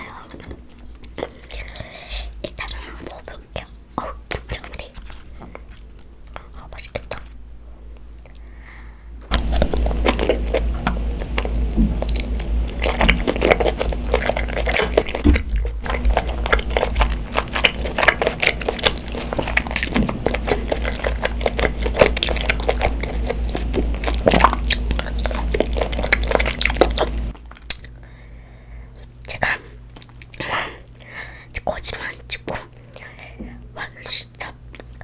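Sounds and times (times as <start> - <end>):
low steady hum: 0.0 - 35.0
wet mouth chewing clicks: 9.3 - 28.0, 29.0 - 35.0.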